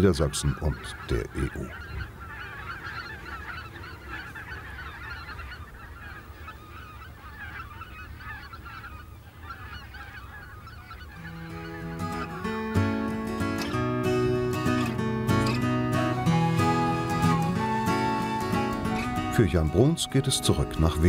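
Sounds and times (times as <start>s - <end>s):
geese honking: 0.0s - 21.0s
guitar music: 11.2s - 21.0s.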